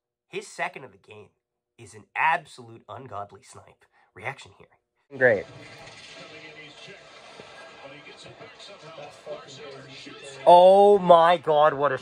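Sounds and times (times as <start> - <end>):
faint television commentary: 1.8 - 12.0.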